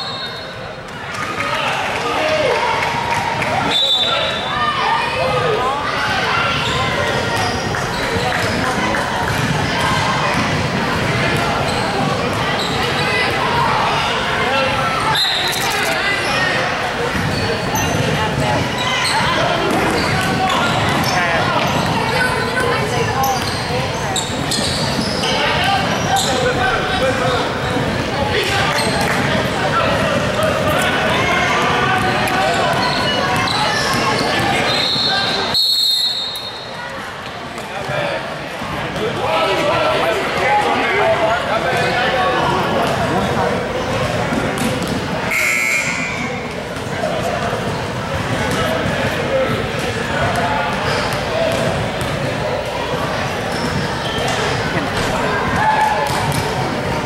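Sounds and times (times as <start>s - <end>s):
indistinct echoing voices: 36.7s - 57.0s.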